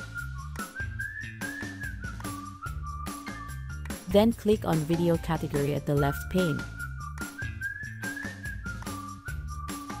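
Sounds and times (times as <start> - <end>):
whistle-like melody over a beat: 0.0 - 4.1, 4.9 - 10.0.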